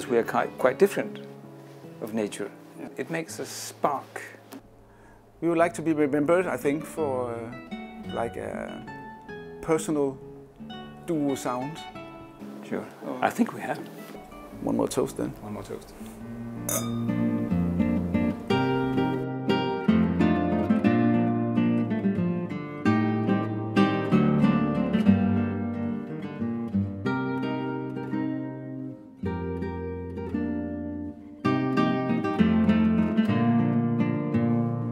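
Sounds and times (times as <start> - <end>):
classical guitars playing: 0.0 - 4.8, 5.4 - 34.9.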